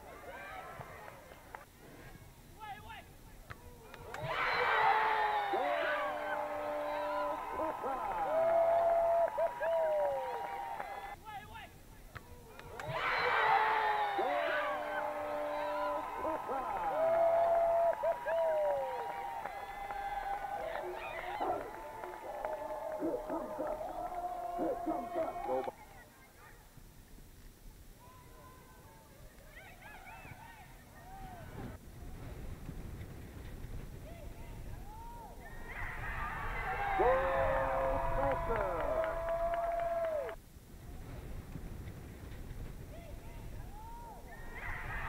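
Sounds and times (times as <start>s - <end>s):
young women shouting and cheering: 4.1s - 11.2s, 12.7s - 26.1s.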